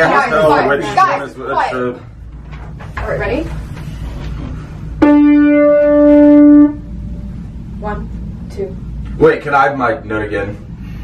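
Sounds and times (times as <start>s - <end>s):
single held pitch note: 5.0s - 7.1s.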